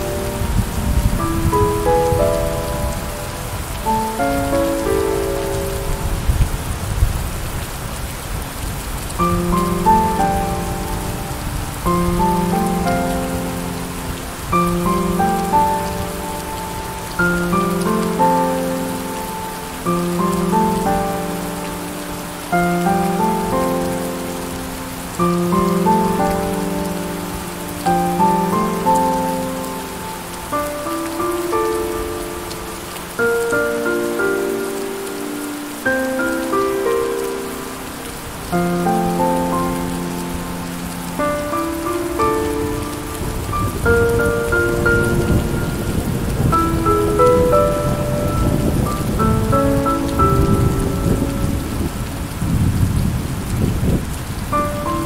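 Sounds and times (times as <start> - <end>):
slow piano chords: 0.0 - 55.0
steady rain falling: 0.0 - 55.0.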